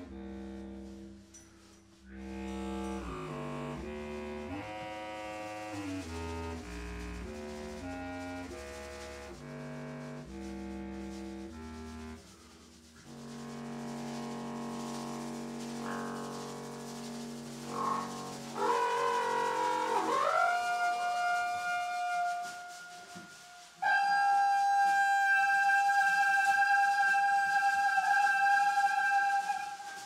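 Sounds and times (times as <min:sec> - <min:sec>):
low clarinet notes: 0:00.0 - 0:30.0
horn tone sliding down: 0:13.0 - 0:30.0.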